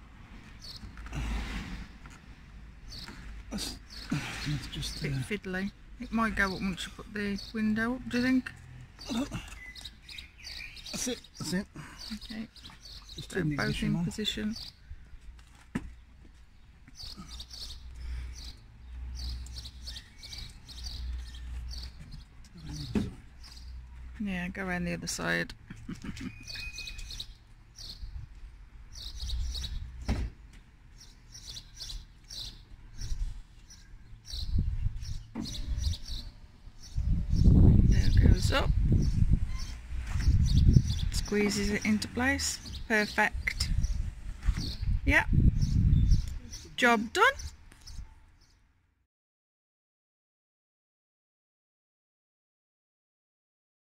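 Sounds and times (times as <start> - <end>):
small birds chirping: 0.5 - 15.0, 15.9 - 48.6
low rumbling on microphone: 34.4 - 46.7.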